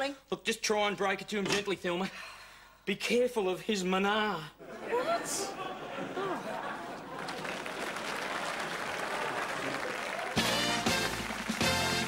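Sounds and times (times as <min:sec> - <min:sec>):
studio audience applauding: 0:05.0 - 0:12.0.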